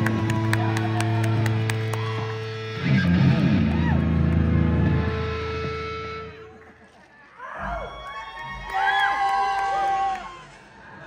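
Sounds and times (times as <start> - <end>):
rock band chords: 0.0 - 6.4.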